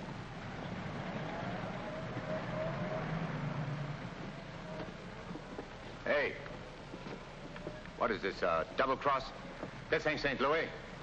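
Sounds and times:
vehicle engine rumbling past: 0.0 - 5.9
film soundtrack hiss: 0.0 - 11.0.

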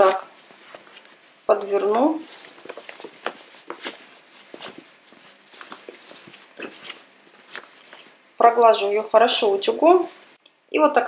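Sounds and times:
fabric basket rustling: 0.0 - 8.2, 8.8 - 10.4.

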